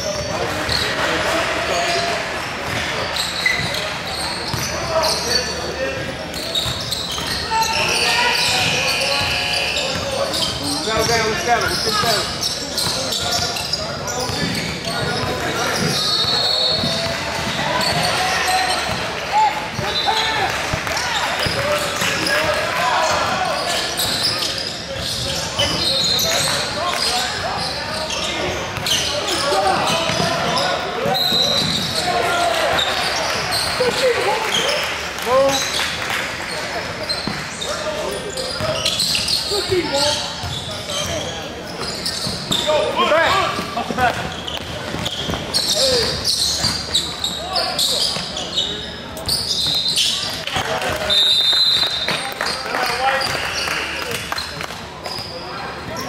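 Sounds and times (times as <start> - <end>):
indistinct chatter of voices: 0.0 - 56.0
sneakers squeaking: 0.0 - 56.0.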